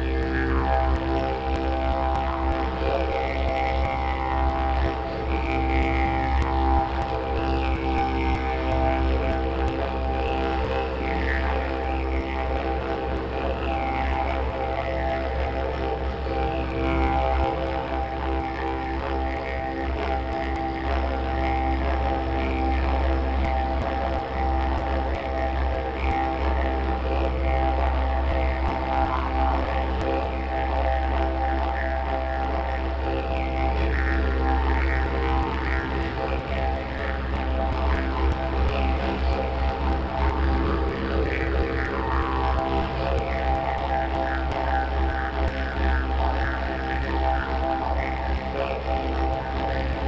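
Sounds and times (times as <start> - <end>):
didgeridoo drone: 0.0 - 50.0.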